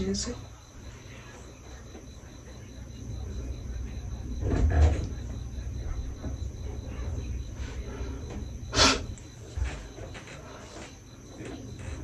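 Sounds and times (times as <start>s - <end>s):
faint high whine: 0.0s - 12.0s.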